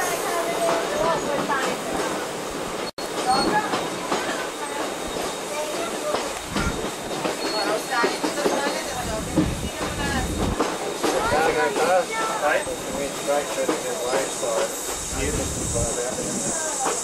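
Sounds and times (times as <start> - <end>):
passengers' voices: 0.0 - 17.0
train wheels clattering over rails: 0.0 - 17.0.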